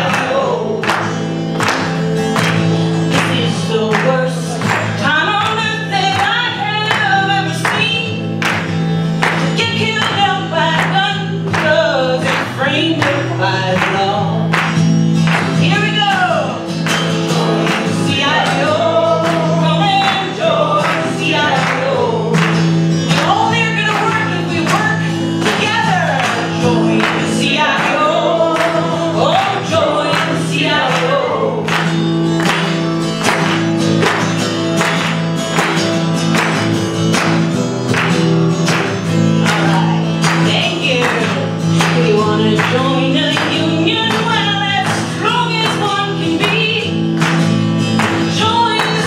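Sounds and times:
woman singing folk song: 0:00.0 - 0:33.1, 0:38.6 - 0:49.0
strummed acoustic guitar: 0:00.0 - 0:49.0.

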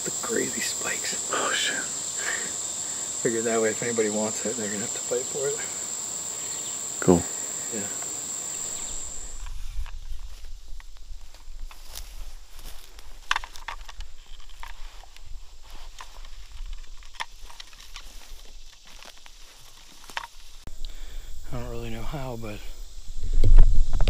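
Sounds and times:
dry leaves and twigs crackling: 0:08.6 - 0:21.0.

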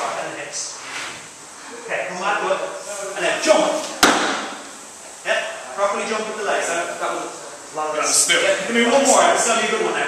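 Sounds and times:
barbell smack on shoulders: 0:04.0 - 0:04.6.

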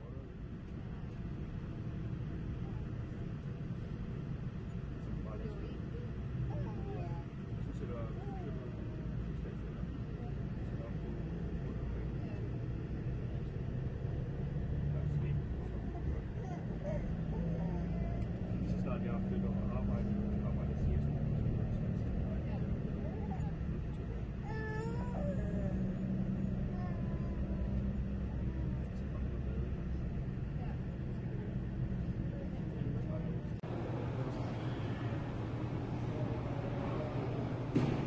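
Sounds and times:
faint voices: 0:00.0 - 0:38.0
vehicle engine and road rumble: 0:00.0 - 0:38.0.

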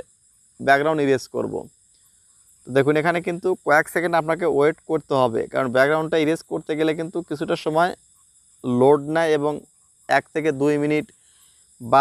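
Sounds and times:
faint high-pitched hiss: 0:00.0 - 0:12.0
man speaking: 0:00.6 - 0:01.7, 0:02.7 - 0:08.0, 0:08.6 - 0:11.1.

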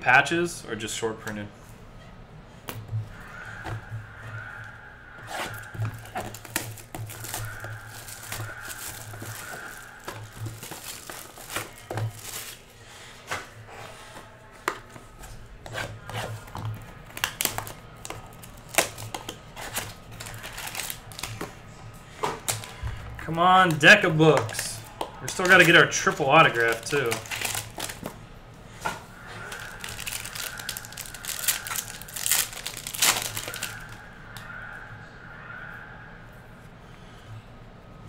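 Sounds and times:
plastic wrap tearing and crinkling: 0:05.3 - 0:12.8, 0:16.1 - 0:21.6, 0:22.2 - 0:23.0, 0:23.6 - 0:28.2, 0:29.4 - 0:34.0.

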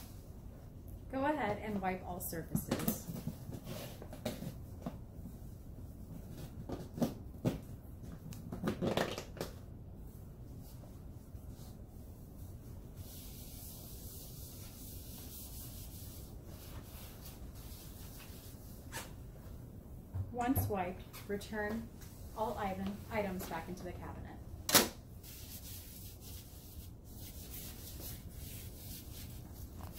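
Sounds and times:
wipe rubbing over countertop: 0:10.1 - 0:19.6, 0:25.1 - 0:29.9.

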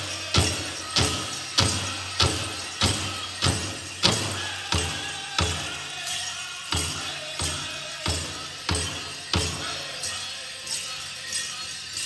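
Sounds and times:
big drum steady beat: 0:00.0 - 0:06.1, 0:06.7 - 0:10.0.

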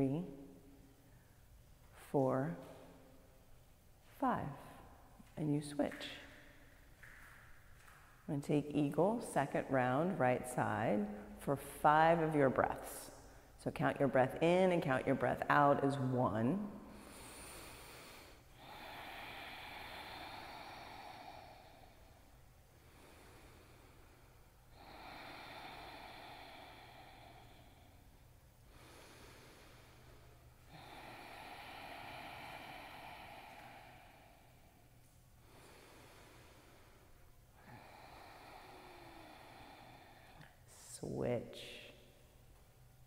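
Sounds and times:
deep breathing through nose: 0:16.8 - 0:40.9.

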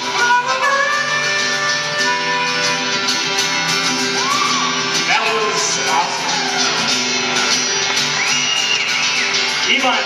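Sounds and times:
acoustic guitars strumming: 0:00.0 - 0:10.0
harmonica playing: 0:00.0 - 0:10.0.

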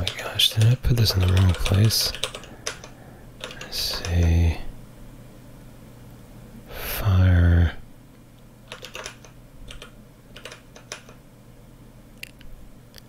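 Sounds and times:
keystrokes on computer keyboard: 0:00.0 - 0:04.2, 0:08.7 - 0:11.2.

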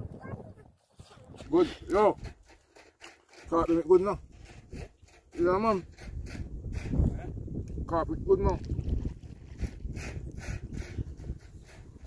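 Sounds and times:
wind rumbling on microphone: 0:00.0 - 0:02.7, 0:03.3 - 0:12.0.

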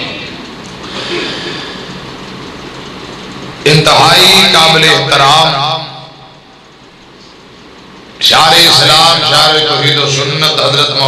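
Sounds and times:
crowded hall rumble: 0:00.0 - 0:11.0
man making announcement: 0:03.6 - 0:06.5, 0:08.2 - 0:11.0.

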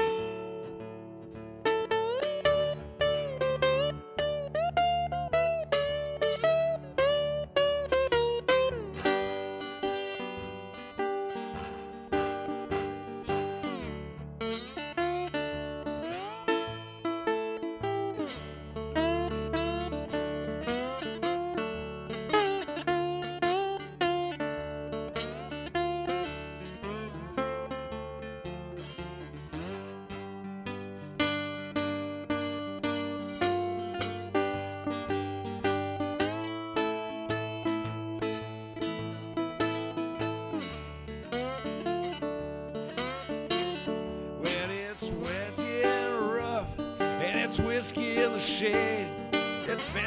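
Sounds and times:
acoustic blues guitar fingerstyle: 0:00.0 - 0:50.0.

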